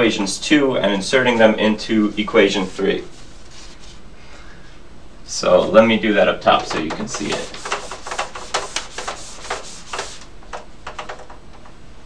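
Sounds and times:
eraser rubbing on whiteboard: 2.1s - 4.1s, 6.5s - 10.3s.

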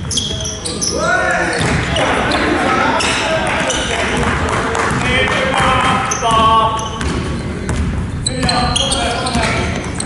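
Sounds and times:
sneaker squeaks: 0.0s - 4.0s, 5.6s - 10.0s
basketball dribbling on hardwood: 4.9s - 10.0s.

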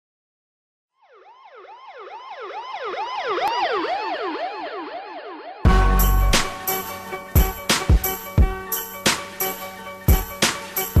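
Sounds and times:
siren yelp: 0.9s - 7.3s.

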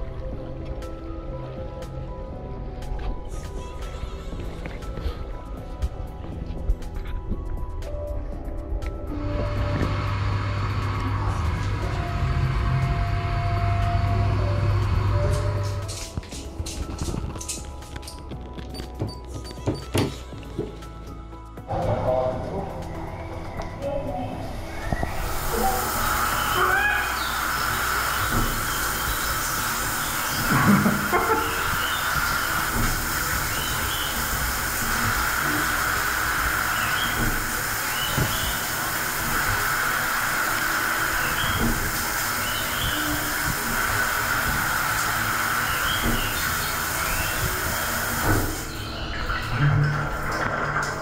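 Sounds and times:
shower spraying water: 9.2s - 18.2s, 24.5s - 51.0s.

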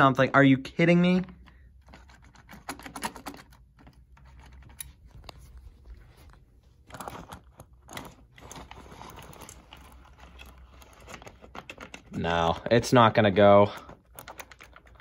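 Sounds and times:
low steady hum: 0.0s - 15.0s
small clicks and rattles: 1.4s - 5.5s, 6.8s - 15.0s.

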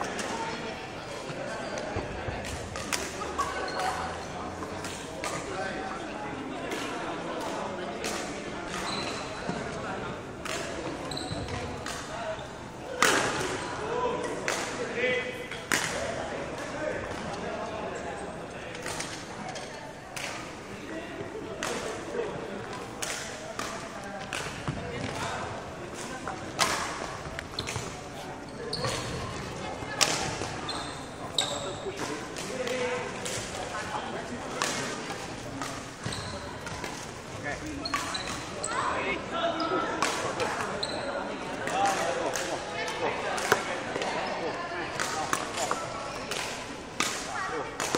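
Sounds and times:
shoes squeaking on wooden floor: 11.0s - 11.6s, 27.3s - 29.5s, 36.0s - 36.6s.

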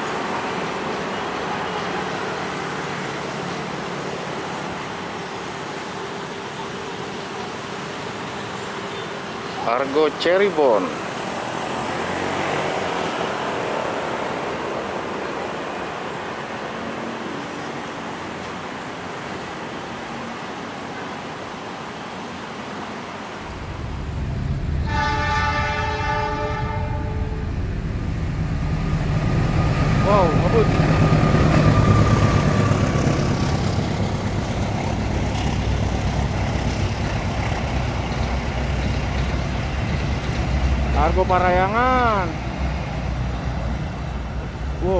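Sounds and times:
passenger train moving: 0.0s - 44.9s
train rumble of engine and wheels: 0.0s - 44.9s
locomotive horn blast: 24.6s - 27.6s.

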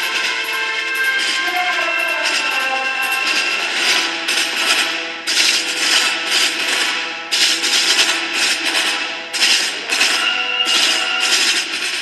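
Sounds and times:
snare drums playing rapid passages: 3.2s - 12.0s.

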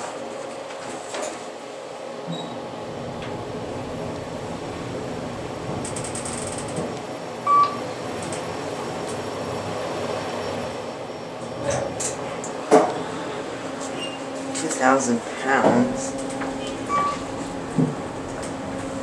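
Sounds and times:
elevator rumbling in shaft: 2.3s - 19.0s
short electronic beep: 16.9s - 17.2s.

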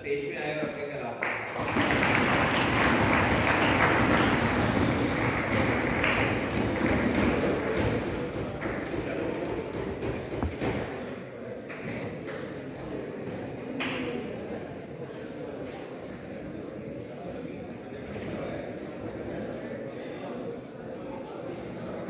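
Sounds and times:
audience applause: 1.2s - 10.6s.

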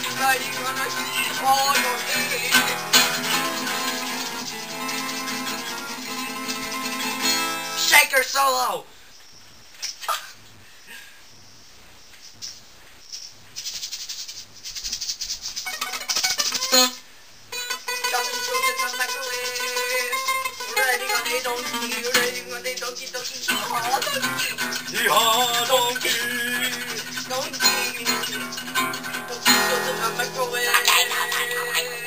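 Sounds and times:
acoustic guitar strumming: 0.0s - 8.0s, 15.7s - 32.0s.

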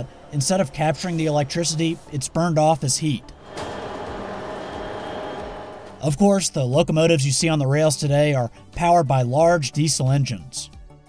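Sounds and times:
diesel locomotives running: 0.0s - 6.4s
faint hum: 3.1s - 6.2s.

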